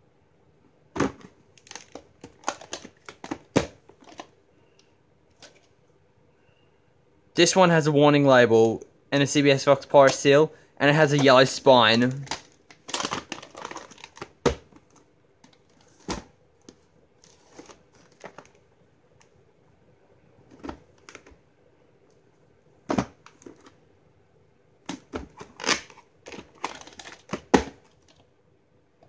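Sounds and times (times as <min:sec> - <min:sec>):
plastic cassette clicks and knocks: 0:01.0 - 0:04.3, 0:12.1 - 0:16.8, 0:24.9 - 0:28.2.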